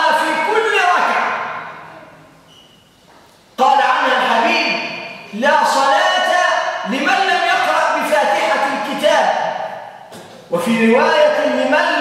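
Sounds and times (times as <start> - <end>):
man speaking in reverberant hall: 0.0 - 2.8, 3.5 - 12.0.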